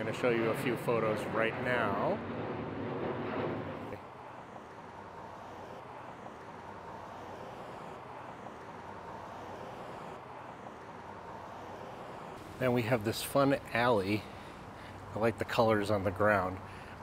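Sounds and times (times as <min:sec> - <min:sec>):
distant street traffic hum: 0:00.0 - 0:17.0.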